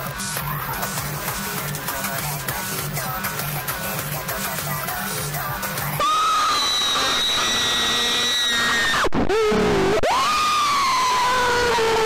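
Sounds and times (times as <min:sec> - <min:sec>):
long high screams: 0:06.0 - 0:12.0.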